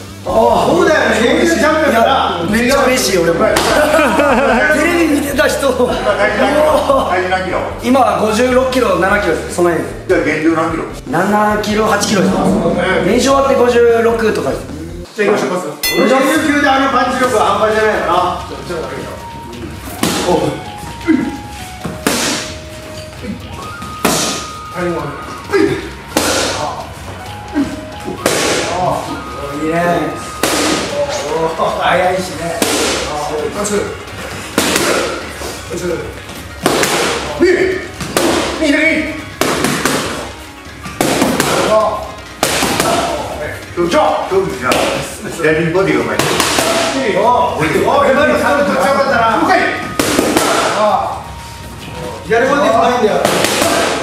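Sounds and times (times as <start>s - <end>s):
person's voice: 11.5s - 14.2s
boxing gloves hitting punch mitts: 21.8s - 22.5s, 34.5s - 35.2s, 36.6s - 37.3s, 39.3s - 40.2s, 40.9s - 41.8s, 42.4s - 43.1s, 46.2s - 47.0s, 50.0s - 50.8s, 53.2s - 54.0s
punches smacking into mitts: 36.6s - 37.2s.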